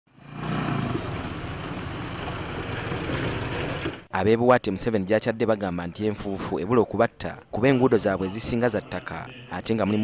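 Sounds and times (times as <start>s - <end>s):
motorcycle engine running: 0.1s - 4.0s.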